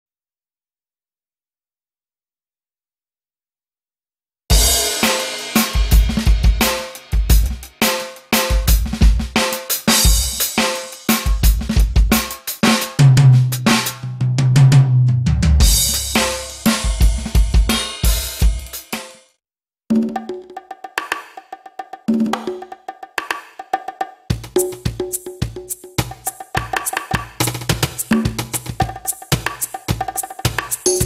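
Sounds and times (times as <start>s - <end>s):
electronic drum kit groove: 4.5s - 19.2s, 24.3s - 31.0s.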